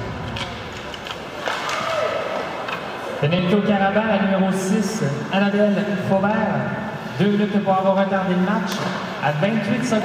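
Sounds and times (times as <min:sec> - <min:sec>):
hockey sticks and puck clacking: 0:00.0 - 0:03.0
voices in arena: 0:00.0 - 0:10.0.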